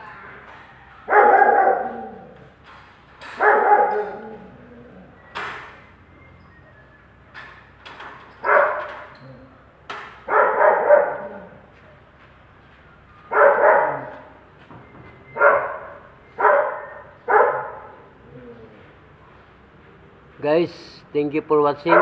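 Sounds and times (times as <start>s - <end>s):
dog barking: 1.1s - 2.4s, 3.3s - 4.5s, 8.4s - 9.0s, 10.2s - 11.6s, 13.3s - 14.4s, 15.4s - 18.1s.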